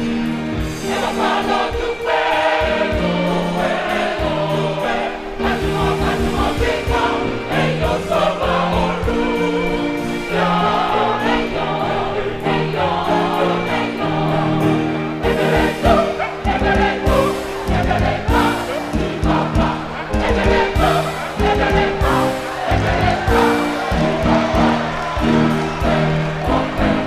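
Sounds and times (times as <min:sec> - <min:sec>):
mixed choir singing gospel: 0:00.0 - 0:27.0.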